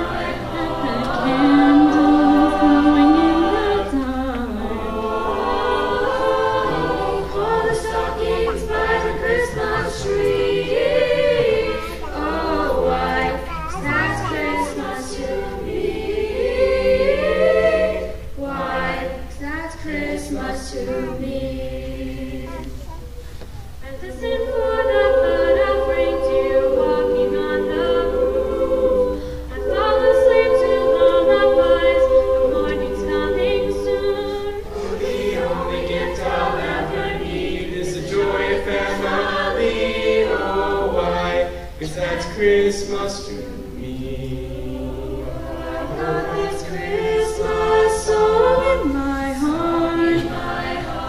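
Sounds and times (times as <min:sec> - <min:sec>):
a cappella vocal ensemble: 0:00.0 - 0:51.0
choir of young voices singing: 0:00.0 - 0:51.0.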